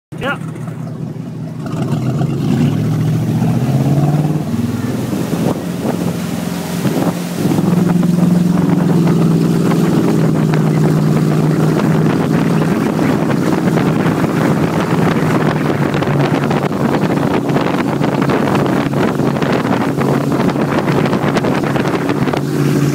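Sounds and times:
motorboat engine pulling away: 0.1s - 22.9s
wind noise on microphone: 0.2s - 22.9s.

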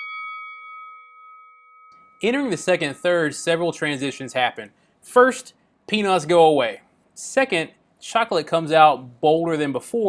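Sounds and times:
boxing bell ringing: 0.0s - 4.7s.

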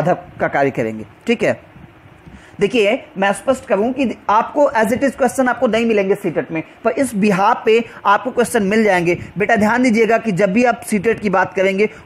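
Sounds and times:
man lecturing: 0.0s - 1.7s, 2.6s - 12.0s.

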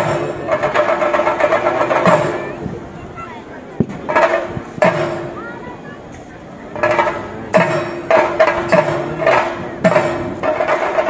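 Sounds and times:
drums playing fast roll: 0.0s - 6.0s, 6.6s - 11.0s.

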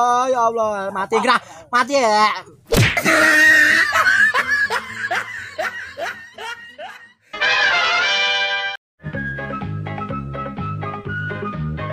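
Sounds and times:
person laughing: 1.0s - 1.6s, 3.0s - 7.2s.

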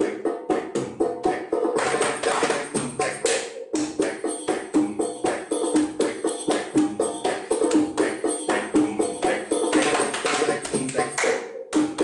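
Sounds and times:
hands slapping thighs: 9.7s - 12.0s.

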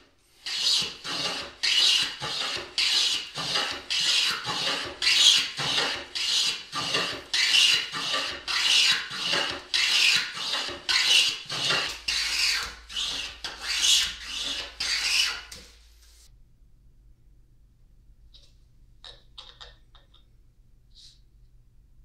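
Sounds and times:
hand plane cutting wood: 0.4s - 15.6s.

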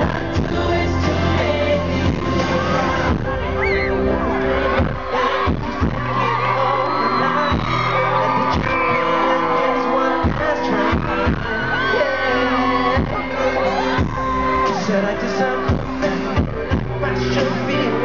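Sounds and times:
man singing pop song: 0.0s - 18.0s
pop backing track with drums: 0.0s - 18.0s.

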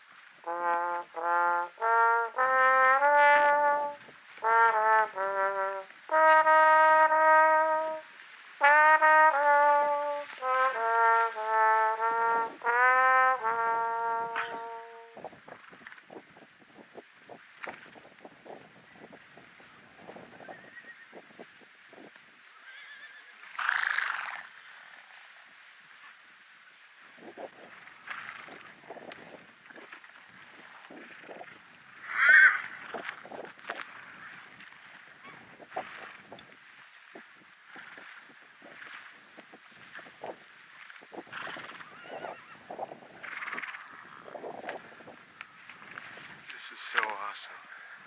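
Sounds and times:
soft hoofbeats on grass: 0.0s - 48.0s
faint high call: 14.2s - 15.2s
rustling and soft thumps: 14.5s - 20.5s
horse neighing: 22.6s - 24.5s, 32.0s - 33.1s, 41.3s - 44.4s.

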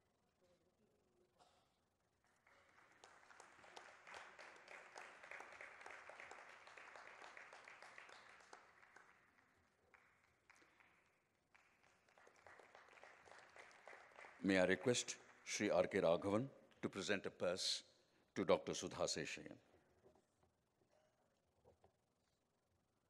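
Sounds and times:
faint audience applause: 2.3s - 16.1s.

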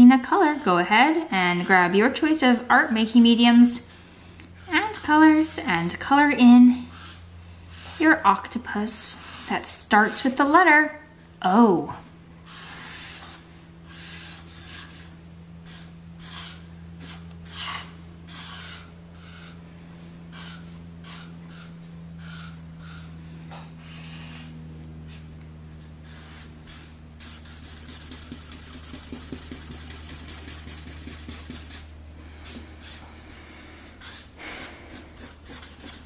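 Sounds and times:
faint steady hum: 0.0s - 36.0s
marker scratching on paper: 26.1s - 31.9s, 34.6s - 36.0s.

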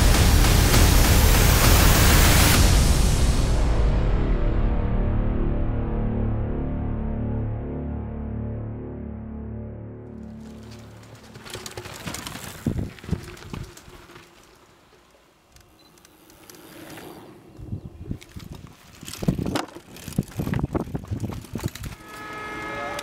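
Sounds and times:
mountain bike rattling over rough ground: 10.2s - 22.7s.

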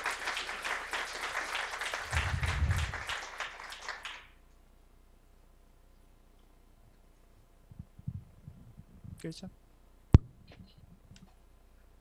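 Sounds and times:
audience applauding: 0.0s - 4.4s.

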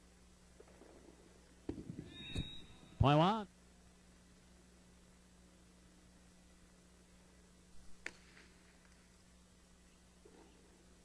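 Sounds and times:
short high squeak: 2.1s - 3.0s.

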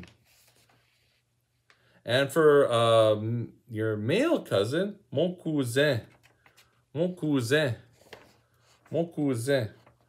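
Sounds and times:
paper sheet rustling: 0.0s - 1.9s, 5.9s - 10.0s.

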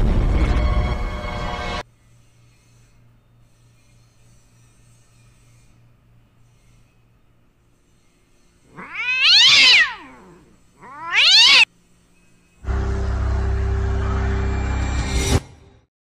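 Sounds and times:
cat-like yowls: 8.7s - 11.7s
low droning hum: 11.9s - 15.4s.

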